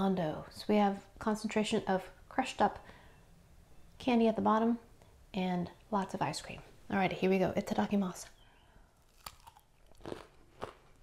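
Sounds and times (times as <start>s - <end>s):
biting and chewing ice cream bar: 9.0s - 11.0s.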